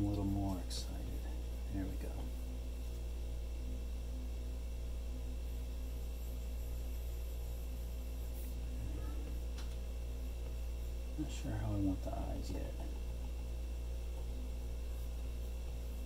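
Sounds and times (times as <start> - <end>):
faint pulsing throb: 0.0 - 16.0
low background hum: 0.0 - 16.0.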